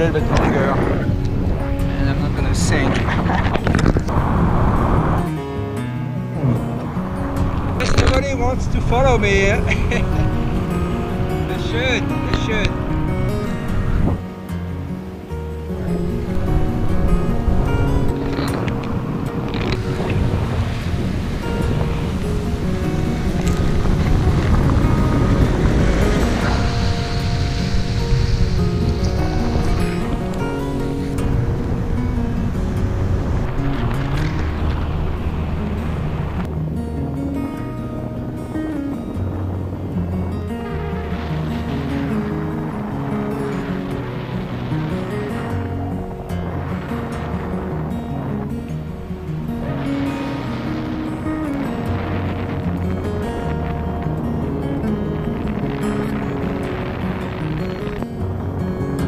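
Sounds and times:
fingerstyle acoustic guitar music: 0.0s - 59.0s
wind rushing on microphone: 0.0s - 59.0s.

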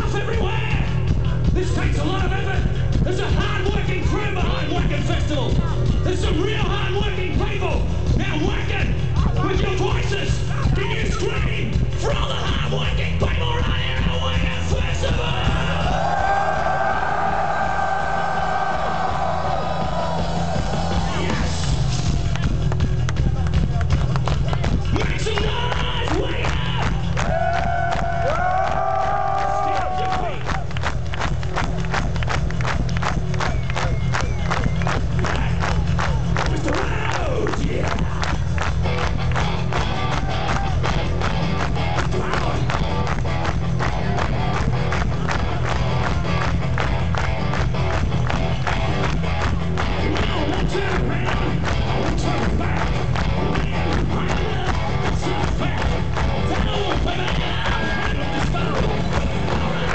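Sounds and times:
fast steady drum beat: 0.0s - 59.9s
crowd shouting along: 15.2s - 21.7s, 26.7s - 30.5s.

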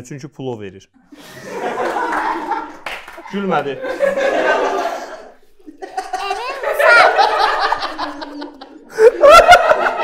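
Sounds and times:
man laughing: 6.9s - 10.0s.

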